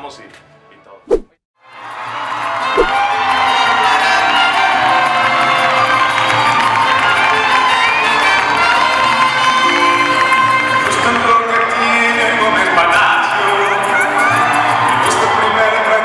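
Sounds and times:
audience cheering and screaming: 0:01.8 - 0:10.2, 0:13.6 - 0:16.0
mariachi band with trumpets: 0:03.0 - 0:12.9.

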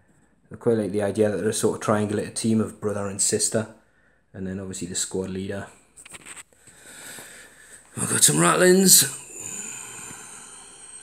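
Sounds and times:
room tone hiss: 0:00.5 - 0:11.0
person speaking: 0:07.9 - 0:10.4.

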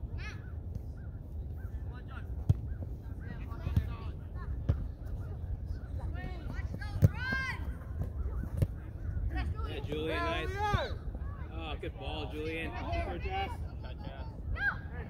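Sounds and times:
soccer ball kicked thuds: 0:02.4 - 0:02.8, 0:03.5 - 0:05.1, 0:06.3 - 0:08.9
players and coaches shouting: 0:09.3 - 0:15.0.

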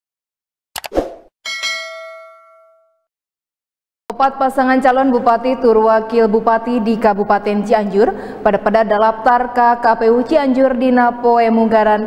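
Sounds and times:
notification bell ding: 0:01.5 - 0:03.0.

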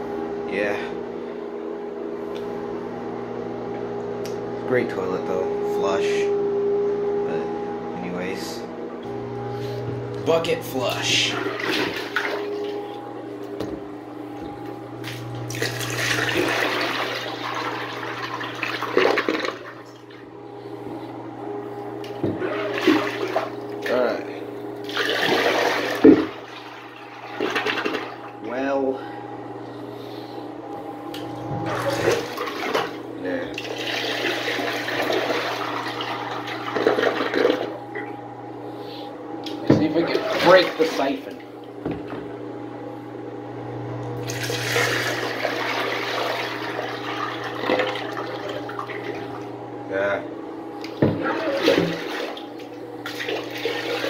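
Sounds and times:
steady hum: 0:00.0 - 0:54.0
water splashing down toilet: 0:11.3 - 0:12.8, 0:15.5 - 0:19.8, 0:22.4 - 0:23.9, 0:24.8 - 0:28.4, 0:31.6 - 0:37.8, 0:40.0 - 0:41.0, 0:44.2 - 0:49.4, 0:51.0 - 0:54.0.

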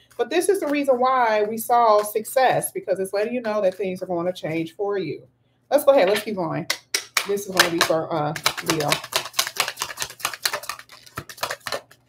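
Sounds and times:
cards being shuffled: 0:07.0 - 0:12.0.

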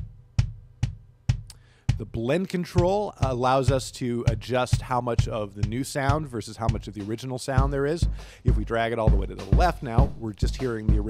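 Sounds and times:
kick drum hits: 0:00.0 - 0:02.1.

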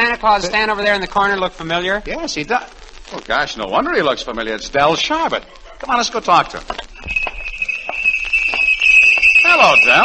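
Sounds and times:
handbell ringing rapidly: 0:07.0 - 0:10.0.

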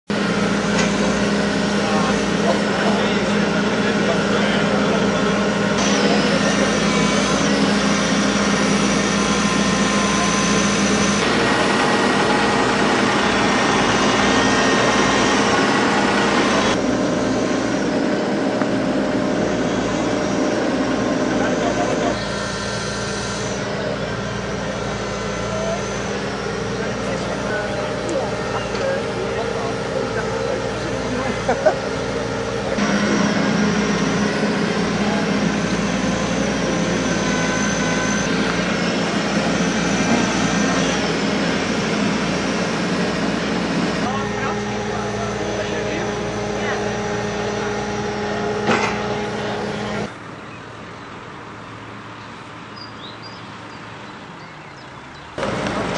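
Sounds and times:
excavator diesel engines running: 0:00.1 - 0:55.9
bystanders talking: 0:00.2 - 0:16.9, 0:18.4 - 0:50.3
person laughing: 0:21.4 - 0:22.2, 0:31.2 - 0:32.0.

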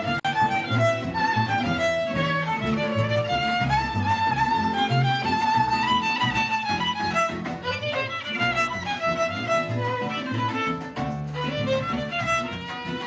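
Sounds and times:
held bass notes: 0:00.0 - 0:13.0
violins bowing a melody: 0:00.0 - 0:13.0.

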